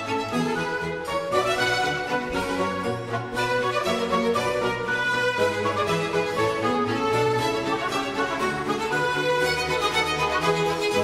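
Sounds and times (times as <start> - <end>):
instrumental music held notes: 0.0 - 11.0.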